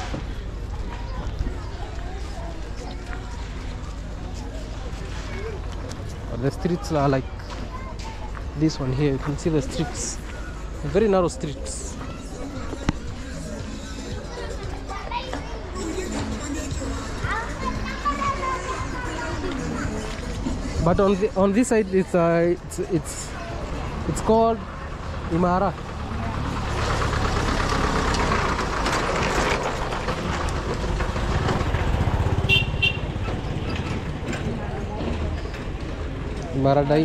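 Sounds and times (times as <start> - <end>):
street noise: 0.0 - 37.0
children's voices: 0.4 - 6.1, 7.2 - 8.6, 11.6 - 20.8
music playing nearby: 10.4 - 24.0
background voices: 11.6 - 21.4
truck engine driving past: 24.8 - 36.2.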